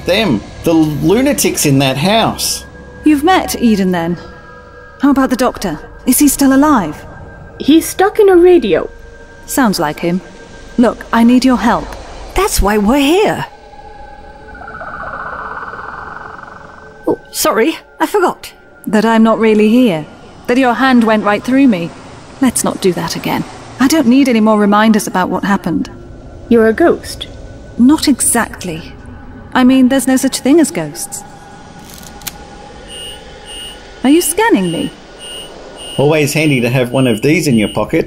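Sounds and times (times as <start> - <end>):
steady ambient drone: 0.0 - 38.0
eerie shimmering sound effect: 10.2 - 25.3
short high-pitched beeps: 32.9 - 33.8, 34.6 - 37.9.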